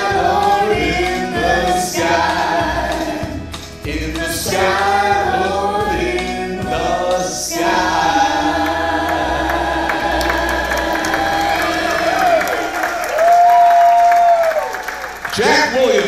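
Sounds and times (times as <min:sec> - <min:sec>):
group singing in harmony: 0:00.0 - 0:13.1.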